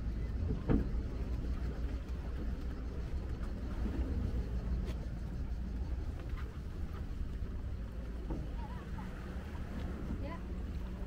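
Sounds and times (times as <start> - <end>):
faint voices of walkers: 0.0 - 11.0
steady low rumble: 0.0 - 11.0.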